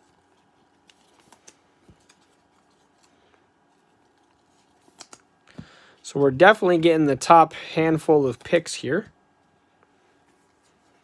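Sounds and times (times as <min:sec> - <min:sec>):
cards sliding softly: 0:00.0 - 0:06.0, 0:09.6 - 0:11.0
trading cards clicking: 0:04.8 - 0:05.3.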